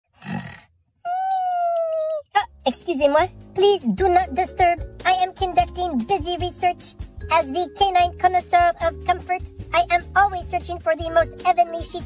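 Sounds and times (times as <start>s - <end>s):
rasping snore: 0.1s - 0.7s.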